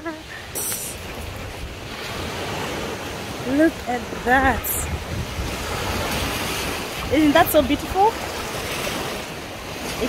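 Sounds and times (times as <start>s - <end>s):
small waves washing on sandy shore: 0.0s - 10.0s
wind rumbling on microphone: 0.0s - 10.0s.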